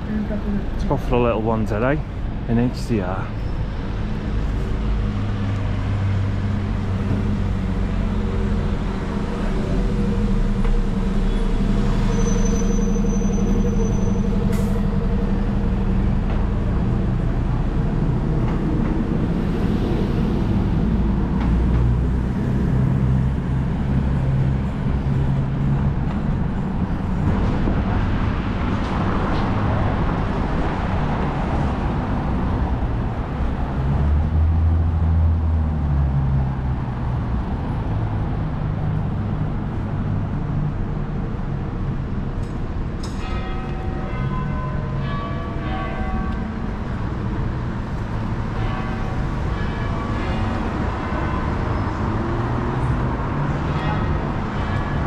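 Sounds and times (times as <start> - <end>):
rush of passing traffic: 0.0 - 55.0
vehicle engines humming: 0.0 - 55.0.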